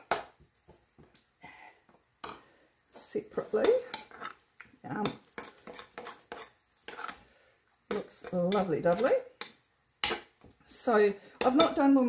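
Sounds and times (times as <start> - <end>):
metal spoon stirring in glass bowl: 3.0 - 4.4, 5.0 - 7.2, 7.8 - 11.9.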